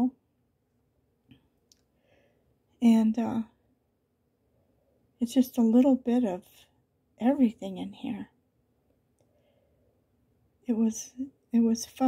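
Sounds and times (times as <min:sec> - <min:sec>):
woman speaking: 0:02.8 - 0:03.5, 0:05.2 - 0:06.6, 0:07.2 - 0:08.3, 0:10.7 - 0:12.0.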